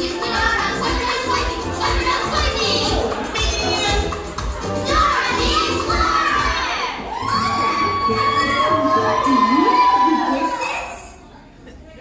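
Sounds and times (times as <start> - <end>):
people shouting and whooping: 4.5 - 11.2.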